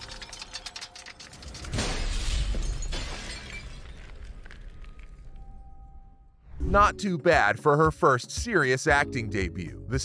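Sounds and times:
porcelain doll shattering: 0:00.0 - 0:04.5
eerie music: 0:04.4 - 0:07.8.

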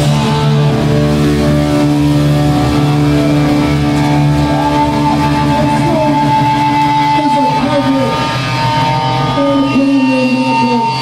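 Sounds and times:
distorted guitars droning chord: 0:00.0 - 0:11.0
guitar note bending: 0:00.0 - 0:11.0.

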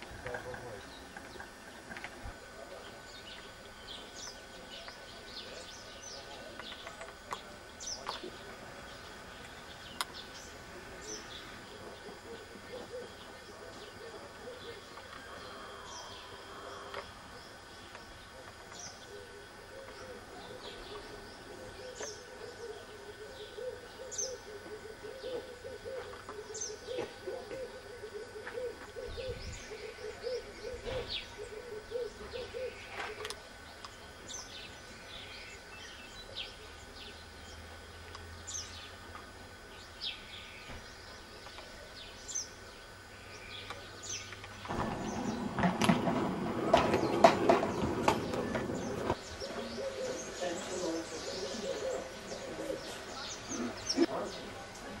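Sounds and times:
low hooting calls: 0:00.0 - 0:54.7.

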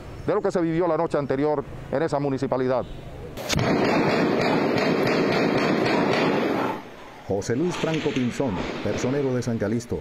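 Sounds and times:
heavy gunfire: 0:03.4 - 0:06.8.

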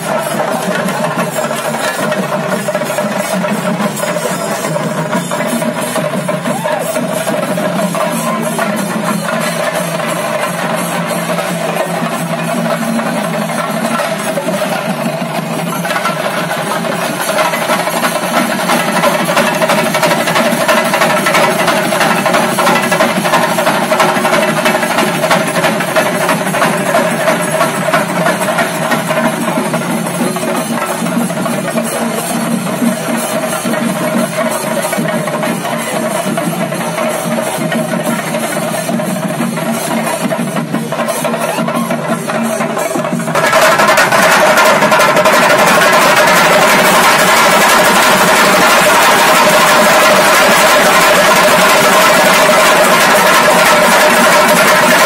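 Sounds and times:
drums beaten in fast roll: 0:00.0 - 0:55.0.

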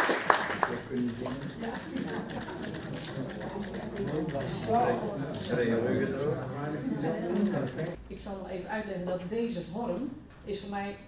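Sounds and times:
low murmured voices: 0:00.6 - 0:08.0.

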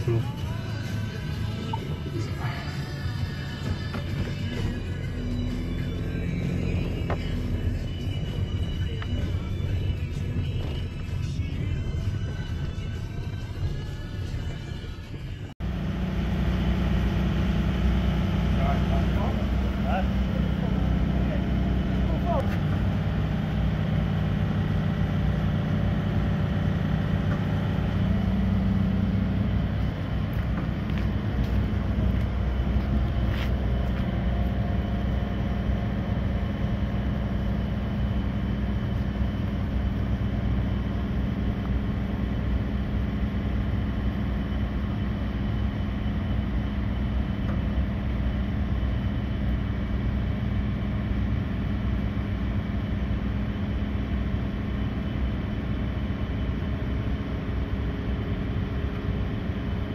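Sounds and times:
background music: 0:00.0 - 0:15.5
truck engine humming: 0:00.0 - 0:59.9.

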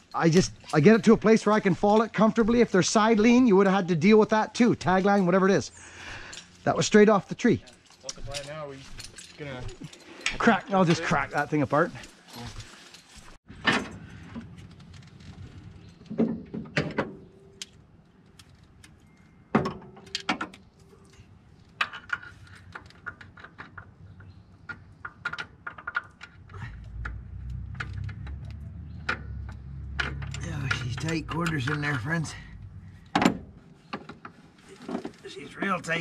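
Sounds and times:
hand tools clinking on metal: 0:00.0 - 0:13.4, 0:29.1 - 0:32.5
low hum: 0:26.6 - 0:33.8.

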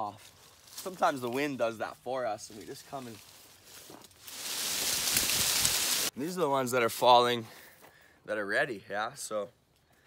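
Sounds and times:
leaves and branches rustling: 0:00.0 - 0:07.3.

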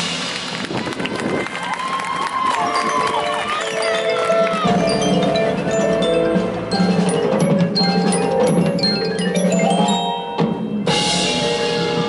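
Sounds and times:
crowd voices: 0:00.2 - 0:12.0.

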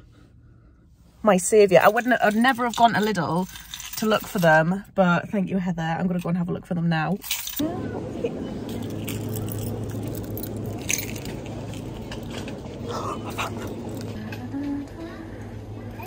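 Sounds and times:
steady low hum: 0:07.4 - 0:16.0
faint voices: 0:12.6 - 0:16.0.

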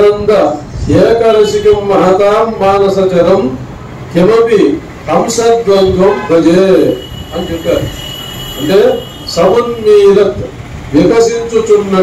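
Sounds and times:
man speaking: 0:00.0 - 0:08.0, 0:08.6 - 0:12.0
high-pitched whine: 0:06.8 - 0:10.2.

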